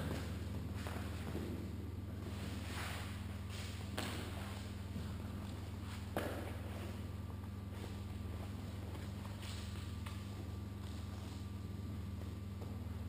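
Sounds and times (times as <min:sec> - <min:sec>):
rustles and thumps on gym mat: 0:00.0 - 0:13.0
steady low hum: 0:00.0 - 0:13.0.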